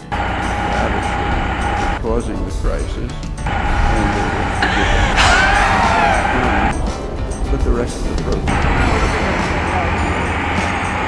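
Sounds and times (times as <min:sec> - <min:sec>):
steady high whine: 0:00.0 - 0:11.0
vehicle engine rumble: 0:00.0 - 0:11.0.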